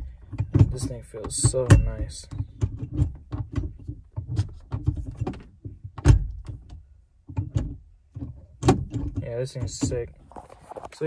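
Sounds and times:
gear lever clicks and clunks: 0.0s - 10.1s.

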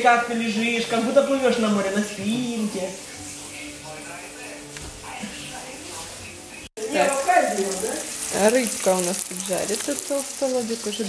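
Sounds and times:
fish sizzling in hot oil: 6.8s - 11.0s.

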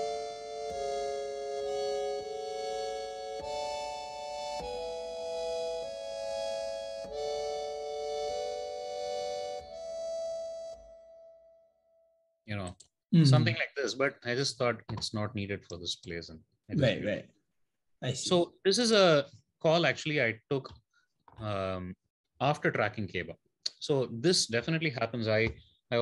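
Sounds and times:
harmonium chords: 0.0s - 11.5s.

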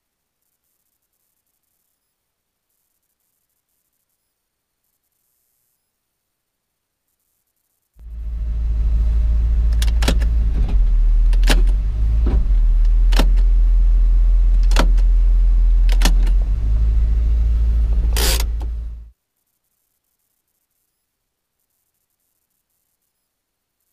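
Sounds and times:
car engine and road rumble: 8.0s - 19.1s
sharp clicks: 9.7s - 12.0s, 12.8s - 13.5s, 14.5s - 15.2s, 15.8s - 16.5s, 18.0s - 19.0s.

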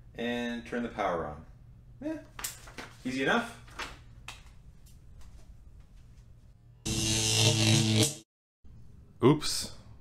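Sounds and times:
loud harsh buzzer: 6.8s - 8.3s.

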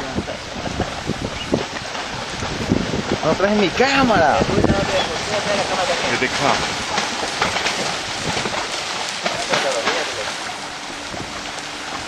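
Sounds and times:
seabirds splashing into water: 0.0s - 12.0s.

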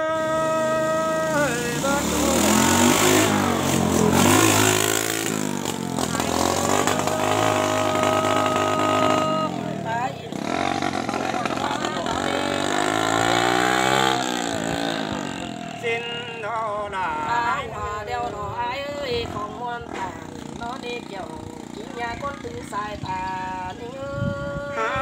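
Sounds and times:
folk singing with held notes: 0.0s - 5.5s, 6.1s - 21.2s
motorcycle engine passing: 0.0s - 25.0s.

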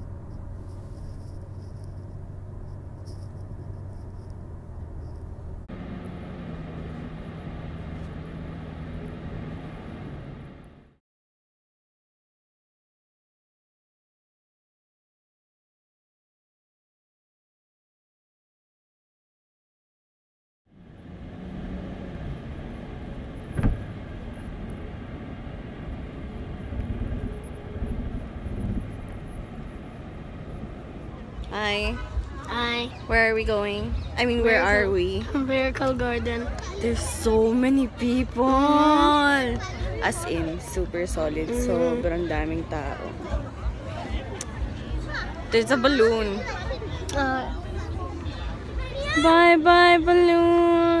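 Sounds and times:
road and engine noise in car: 0.0s - 11.0s, 20.7s - 51.0s
sharp knock: 23.6s - 23.8s.

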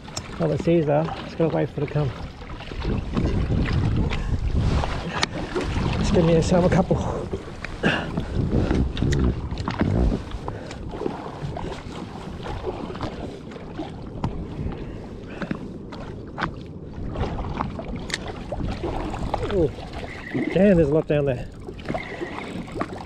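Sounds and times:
waves lapping against hull: 0.0s - 23.0s
low rumble: 1.8s - 20.8s.

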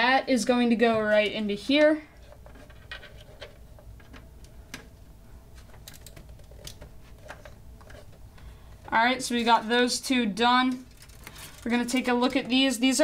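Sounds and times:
cable rustling: 0.8s - 13.0s.

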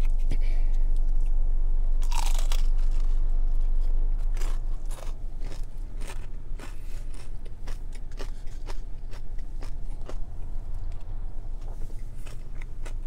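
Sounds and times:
crunchy chewing of fried chicken: 2.0s - 13.0s.

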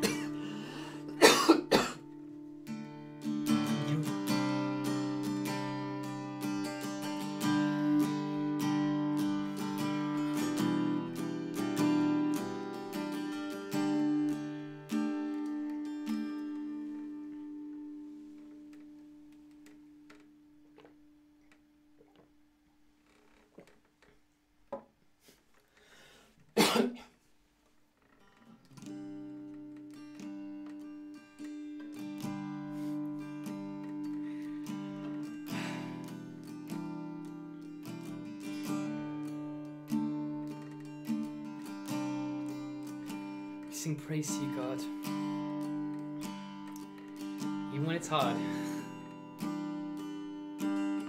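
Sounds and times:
man coughing: 0.0s - 2.0s, 26.6s - 27.1s
acoustic guitar chord ringing: 0.0s - 19.1s, 28.8s - 51.0s.

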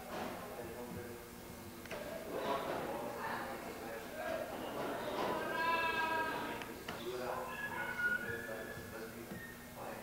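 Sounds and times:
high drawn-out vocal call: 7.4s - 8.5s.

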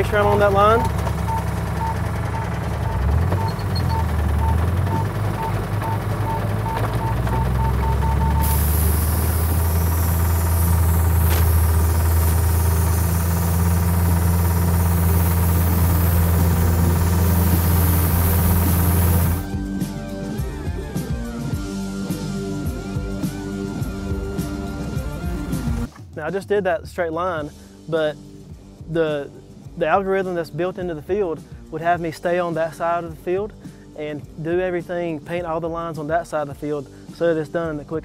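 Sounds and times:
vehicle engine running: 0.0s - 19.6s
guitar music: 0.0s - 21.5s
short high beeps: 0.3s - 8.9s
steady hiss: 8.4s - 19.4s.

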